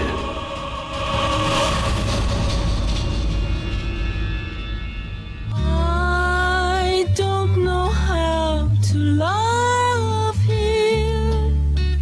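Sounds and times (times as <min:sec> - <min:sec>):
low rumbling drone: 0:00.0 - 0:07.7.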